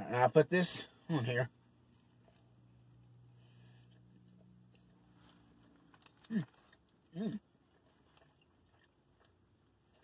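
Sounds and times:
faint low hum: 0:00.0 - 0:10.0
person chewing a burger: 0:01.7 - 0:10.0.

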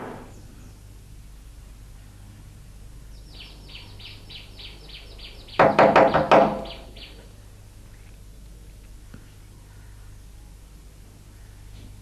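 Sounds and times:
rapid high bird chirps: 0:03.1 - 0:07.2
harsh bird calls: 0:03.1 - 0:07.3.

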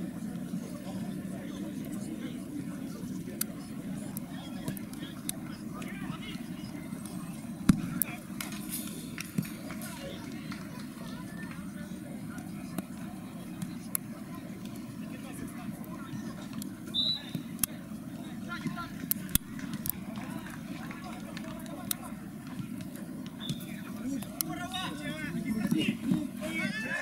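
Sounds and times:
players shouting: 0:23.4 - 0:27.0.

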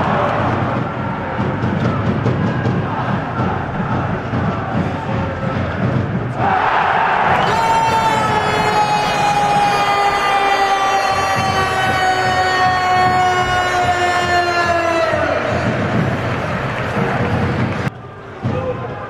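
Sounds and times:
crowd cheering: 0:00.0 - 0:19.0.

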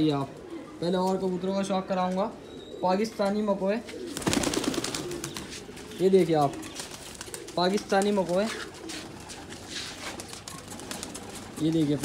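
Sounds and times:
pigeons cooing: 0:00.0 - 0:12.0
rustling: 0:08.2 - 0:12.0.

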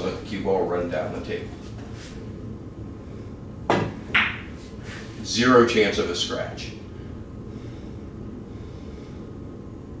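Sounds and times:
cue tip striking ball: 0:03.7 - 0:04.6.

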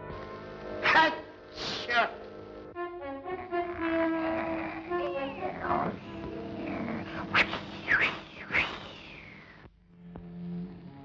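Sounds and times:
orchestral cartoon music: 0:02.6 - 0:07.3
swooping squeals: 0:03.9 - 0:09.6.

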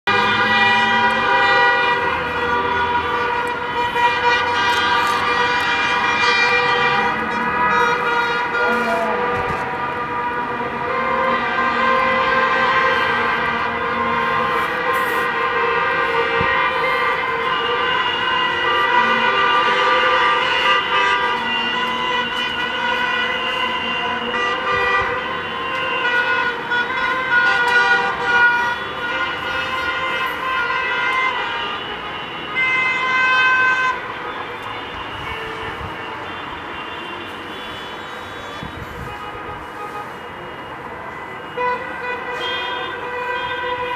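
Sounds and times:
many car horns honking: 0:00.1 - 0:43.9.

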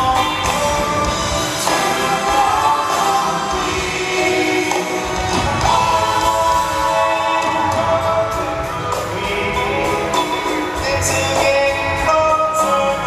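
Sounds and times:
backing singers in harmony: 0:00.0 - 0:12.7
acoustic guitar: 0:00.0 - 0:13.0.

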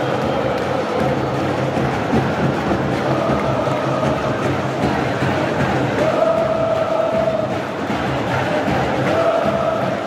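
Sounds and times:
stadium crowd singing a chant: 0:00.0 - 0:10.0.

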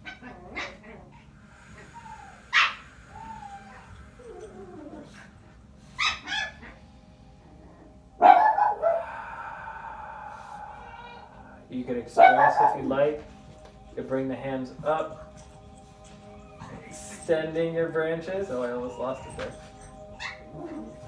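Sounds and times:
dog whining: 0:00.0 - 0:09.0, 0:10.5 - 0:11.5, 0:16.0 - 0:17.2, 0:18.5 - 0:21.0
dog barking: 0:06.0 - 0:06.8, 0:08.2 - 0:09.0, 0:12.2 - 0:13.0.

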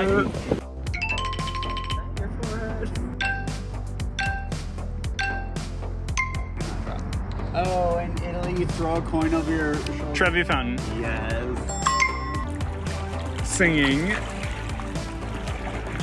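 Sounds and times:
countdown beeps: 0:00.9 - 0:02.2, 0:03.2 - 0:06.7, 0:11.6 - 0:12.5.

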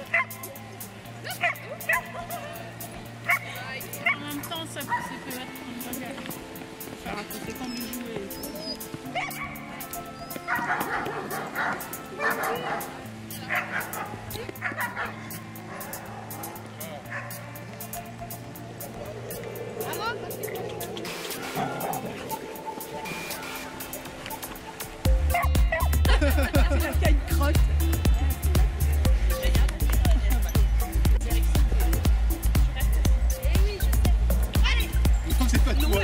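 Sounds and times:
dogs barking and yipping: 0:00.0 - 0:00.6, 0:01.2 - 0:05.4, 0:07.5 - 0:26.7
background music with held notes: 0:00.0 - 0:36.0
loud bass-heavy beat: 0:25.1 - 0:36.0.

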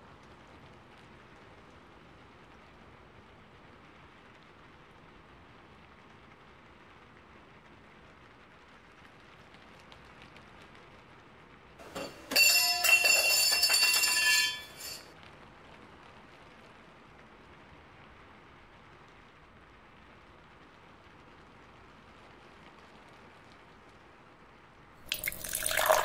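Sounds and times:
faint room hiss: 0:00.0 - 0:26.0
mechanical bell alarm clock ringing: 0:12.0 - 0:15.0.

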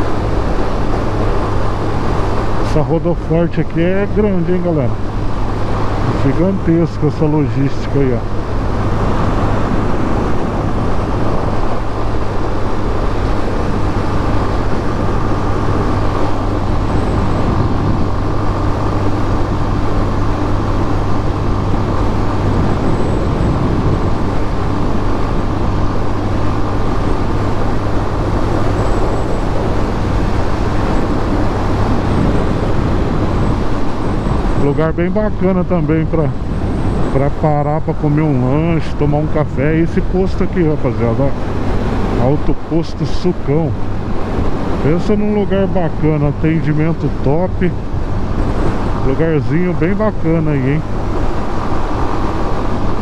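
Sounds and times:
motorcycle engine cruising: 0:00.0 - 0:53.0
wind and road noise: 0:00.0 - 0:53.0.

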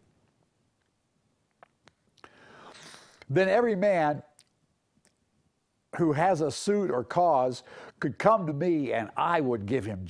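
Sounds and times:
man breathing in: 0:02.2 - 0:03.2, 0:07.6 - 0:08.0.

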